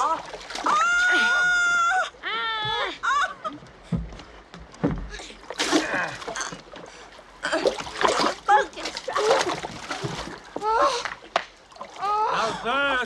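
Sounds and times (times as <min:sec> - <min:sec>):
person crying out: 0:00.0 - 0:03.4
water splashing: 0:00.0 - 0:13.0.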